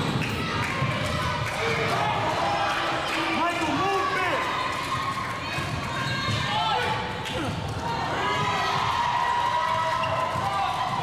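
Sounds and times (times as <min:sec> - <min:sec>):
voices of players and spectators: 0:00.0 - 0:11.0.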